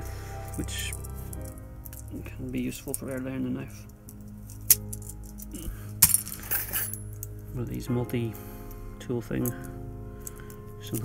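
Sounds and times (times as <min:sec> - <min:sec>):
background music: 0:00.0 - 0:11.0
metal tools clinking: 0:00.4 - 0:03.2, 0:03.8 - 0:07.4.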